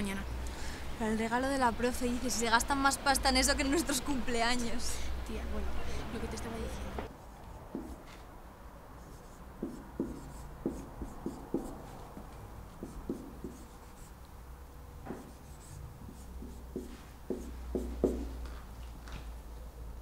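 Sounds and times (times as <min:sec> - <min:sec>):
marker pen writing on whiteboard: 0:06.9 - 0:08.2, 0:09.0 - 0:14.2, 0:15.0 - 0:18.6.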